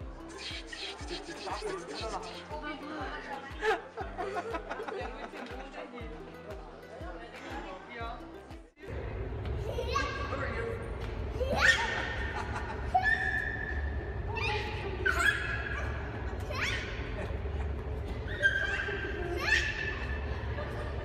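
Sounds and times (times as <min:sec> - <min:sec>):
low room hum: 0:08.9 - 0:21.0
children squealing and shrieking: 0:11.4 - 0:17.4, 0:18.1 - 0:20.4.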